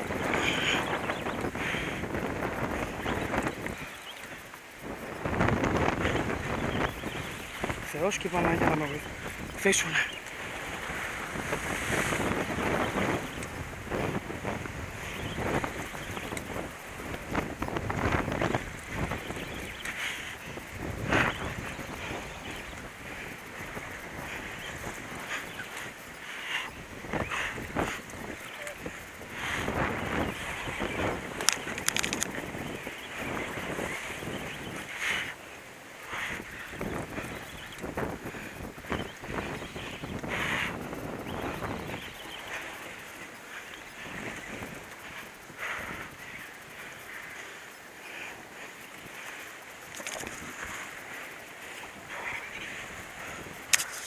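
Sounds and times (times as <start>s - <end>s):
sea waves breaking on rocks: 0.0s - 35.0s
wind buffeting microphone: 0.0s - 54.0s.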